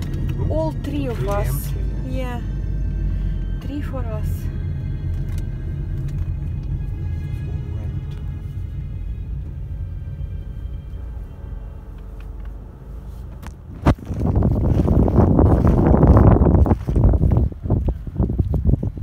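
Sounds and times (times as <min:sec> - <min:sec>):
quiet music: 0:00.0 - 0:15.4
car road rumble: 0:00.0 - 0:19.0
wind noise on microphone: 0:13.2 - 0:19.0.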